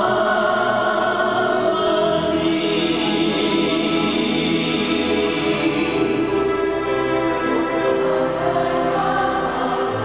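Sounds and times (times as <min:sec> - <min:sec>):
choir singing long notes: 0:00.0 - 0:10.0.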